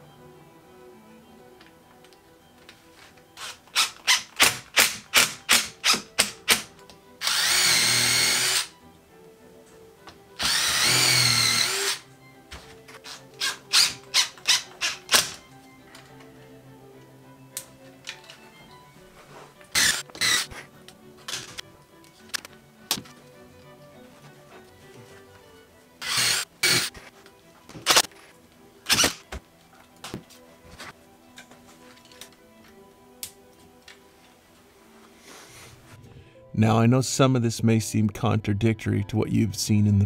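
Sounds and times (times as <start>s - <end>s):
cordless drill driving screws: 7.2s - 8.7s, 10.4s - 12.0s, 13.0s - 15.4s, 19.7s - 20.5s, 26.0s - 27.0s, 28.9s - 29.2s.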